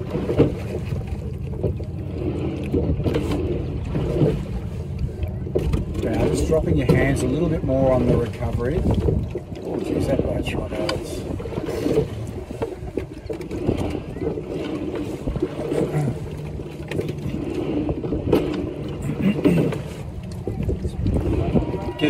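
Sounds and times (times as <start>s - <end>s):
clicks from oars and rigging: 0.0s - 22.0s
rowing stroke noise: 0.0s - 22.0s
wind rumbling on microphone: 0.0s - 22.0s.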